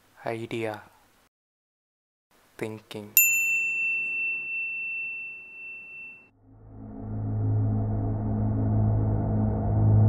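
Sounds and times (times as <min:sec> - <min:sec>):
high ding sound effect: 0:03.3 - 0:06.3
low droning hum: 0:06.4 - 0:10.0.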